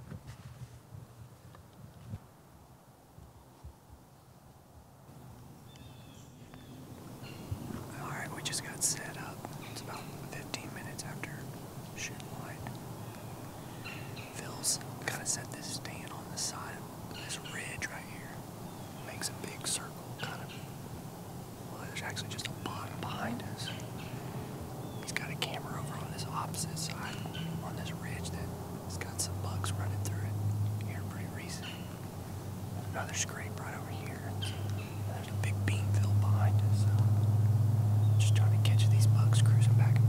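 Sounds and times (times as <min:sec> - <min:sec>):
man whispering: 0:07.7 - 0:12.8, 0:14.3 - 0:20.6, 0:21.7 - 0:23.8, 0:25.0 - 0:31.8, 0:32.8 - 0:34.5, 0:35.1 - 0:37.0, 0:38.2 - 0:40.0.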